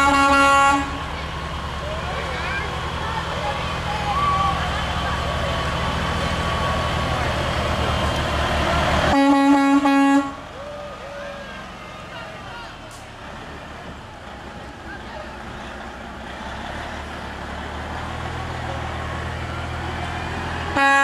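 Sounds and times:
air horn blast: 0.0 - 1.0, 9.1 - 10.5, 20.7 - 21.0
crowd voices: 0.0 - 21.0
truck diesel engine: 0.0 - 21.0.

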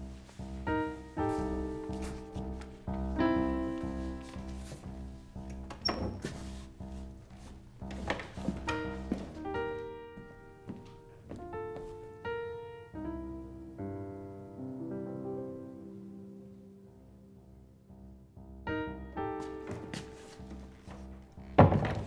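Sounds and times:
piano music: 0.0 - 22.0
dull thumps: 20.9 - 22.0.

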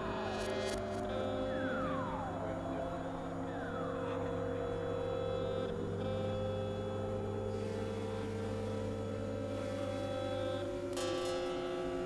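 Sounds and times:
synthesizer drone: 0.0 - 12.0.

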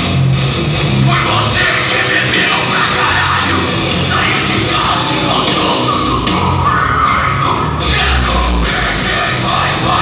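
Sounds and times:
heavy metal band playing live: 0.0 - 10.0.

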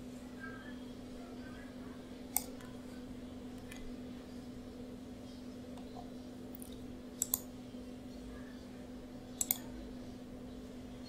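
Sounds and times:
steady low hum: 0.0 - 11.0
computer mouse clicking: 2.3 - 2.7, 5.7 - 7.5, 9.4 - 9.7.

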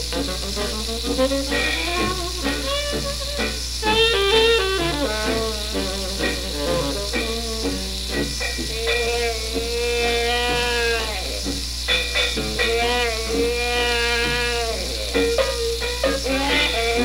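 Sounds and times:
hot jazz band on record: 0.0 - 17.0
record surface hiss: 0.0 - 17.0.

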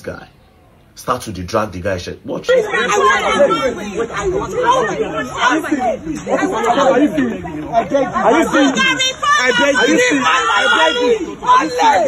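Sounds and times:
overlapping voices chattering: 0.0 - 12.0.

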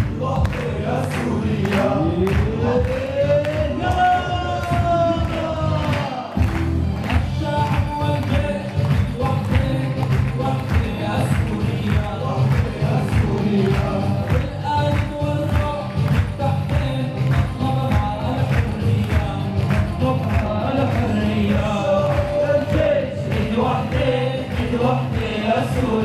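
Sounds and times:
men singing through microphones: 0.0 - 26.0
steady beat: 0.0 - 26.0.

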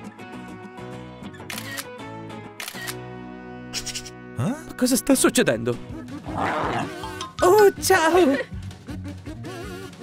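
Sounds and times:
upbeat background music: 0.0 - 10.0
camera shutter clicks: 1.5 - 2.0, 2.6 - 3.0.

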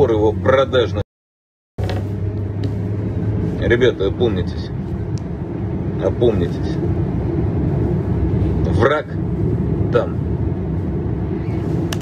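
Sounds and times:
road and engine drone in car: 0.0 - 1.1, 1.8 - 12.0.

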